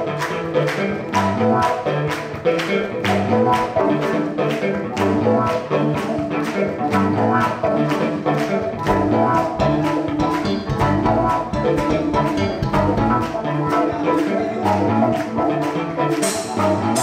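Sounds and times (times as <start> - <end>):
drums keeping steady beat: 0.0 - 17.0
electric bass: 0.0 - 17.0
keyboards: 0.0 - 17.0.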